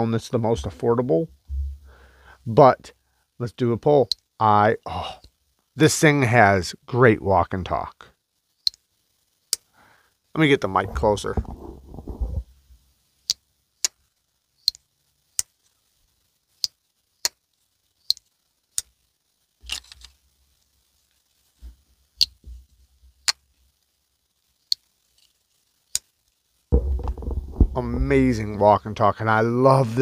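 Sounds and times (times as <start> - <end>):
dull handling thumps: 10.9 - 12.4, 26.7 - 28.6.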